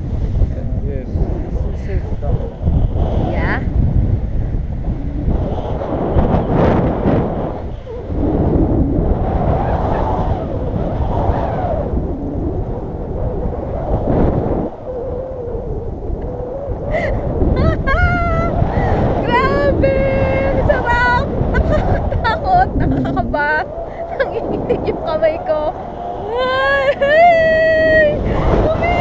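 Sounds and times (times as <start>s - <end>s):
wind buffeting microphone: 0.0s - 29.0s
woman crying out excitedly: 16.9s - 24.9s, 26.3s - 29.0s.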